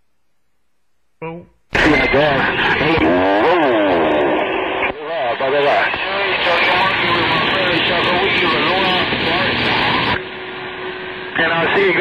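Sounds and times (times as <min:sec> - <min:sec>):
garbled radio voice: 0:01.2 - 0:10.2
radio band hiss: 0:01.7 - 0:12.0.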